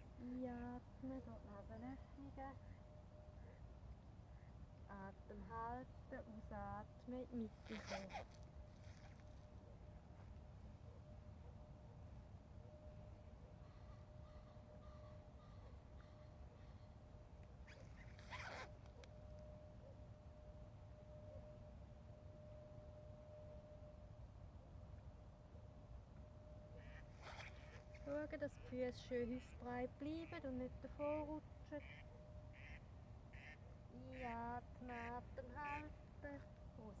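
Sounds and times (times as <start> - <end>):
faint steady hum: 0.0 - 37.0
faint bird calls: 13.4 - 19.2, 26.7 - 35.2.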